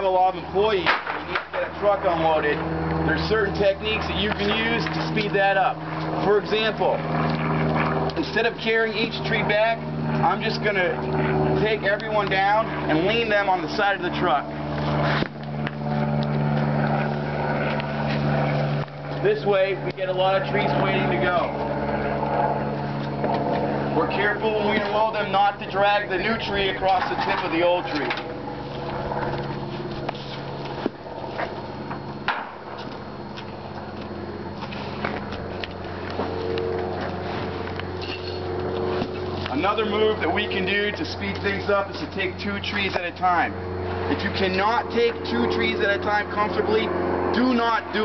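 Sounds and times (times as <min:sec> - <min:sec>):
engine humming: 0:00.0 - 0:48.0
knocks and rustles of trees: 0:14.6 - 0:21.0, 0:21.6 - 0:23.8, 0:26.8 - 0:41.6.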